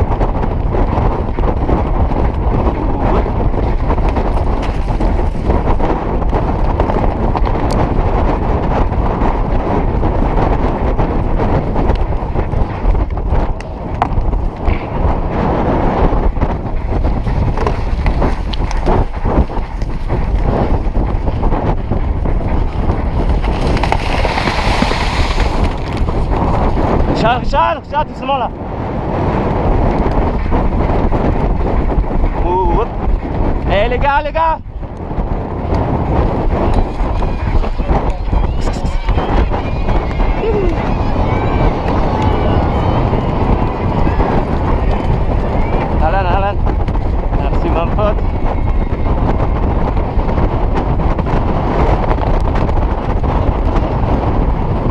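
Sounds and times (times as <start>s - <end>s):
horse hooves drumming on turf: 0.0s - 27.4s, 28.6s - 54.9s
wind buffeting microphone: 0.0s - 54.9s
hoofbeats thudding on turf: 0.6s - 8.2s, 11.0s - 27.2s
riders' voices: 26.3s - 28.6s, 32.3s - 34.7s, 35.8s - 48.3s.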